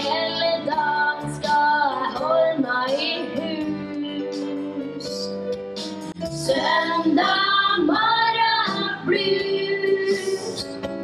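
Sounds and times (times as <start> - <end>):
young singers singing: 6.4 - 10.8.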